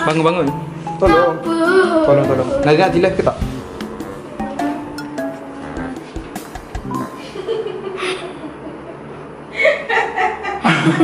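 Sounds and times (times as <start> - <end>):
man laughing: 7.0 - 11.0.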